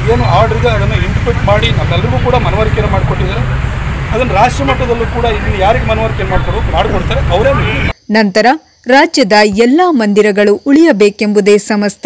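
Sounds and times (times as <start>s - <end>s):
man talking: 0.0s - 3.5s, 4.1s - 7.9s
low outdoor rumble: 0.0s - 7.9s.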